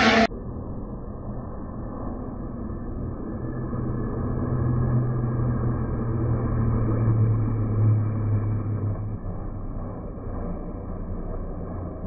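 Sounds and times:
racing car engine passing: 0.0s - 0.3s, 2.9s - 12.0s.

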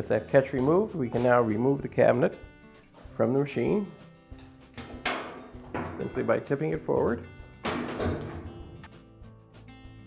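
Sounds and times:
faint background music: 0.0s - 10.0s
sheet metal cabinet clunk: 4.8s - 6.4s, 7.5s - 8.9s.

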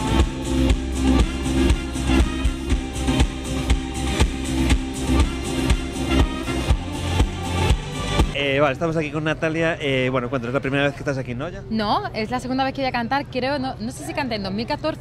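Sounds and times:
brass instruments holding notes: 0.0s - 8.4s
steady drum beat: 0.0s - 8.4s.

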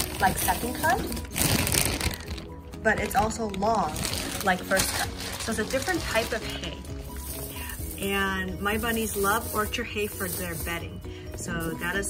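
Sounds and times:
hay rustling in plastic bag: 0.0s - 2.6s, 3.4s - 12.0s.

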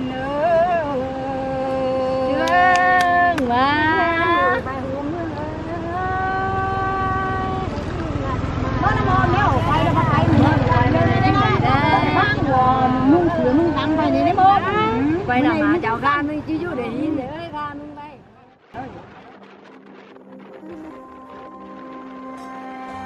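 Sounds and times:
woman singing unaccompanied: 0.0s - 17.9s
low rumble: 17.2s - 23.0s.

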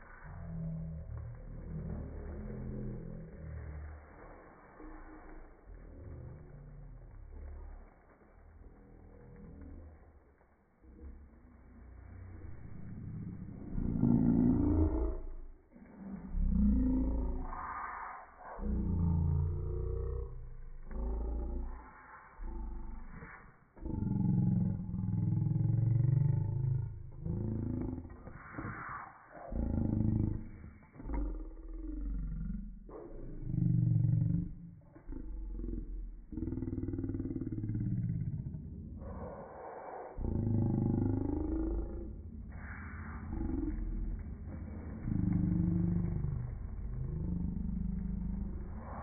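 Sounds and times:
slowed-down deep voices: 0.0s - 49.0s.

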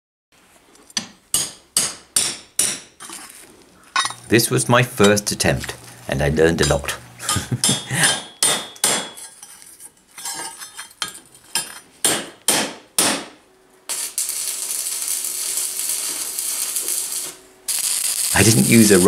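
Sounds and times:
arc welding hiss: 4.2s - 8.2s, 13.9s - 19.0s
hammer striking steel plate: 7.6s - 9.2s.

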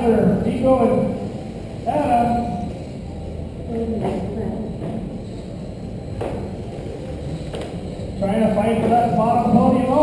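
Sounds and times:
electric race cars humming: 0.0s - 10.0s.

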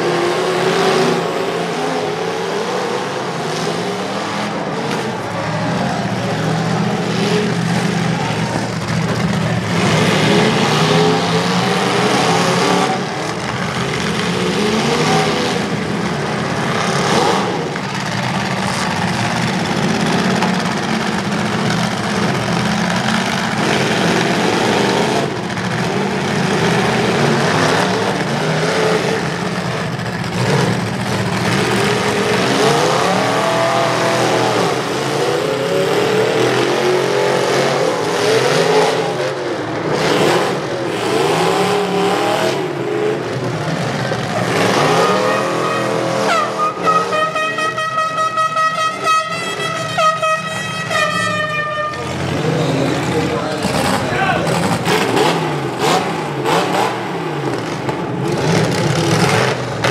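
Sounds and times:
truck engines revving: 0.0s - 59.9s.

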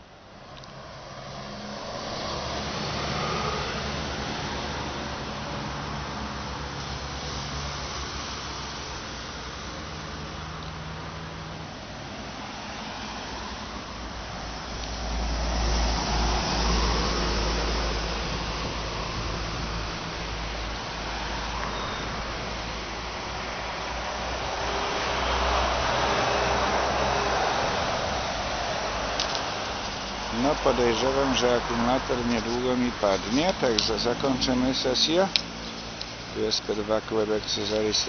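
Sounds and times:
cars passing on road: 0.0s - 38.0s.

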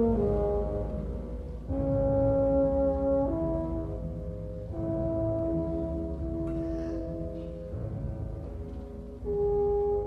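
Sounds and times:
low band accompaniment: 0.0s - 10.0s.

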